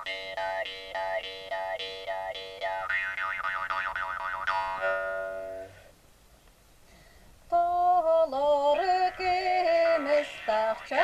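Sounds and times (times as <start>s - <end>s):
jaw harps twanging: 0.0s - 5.9s.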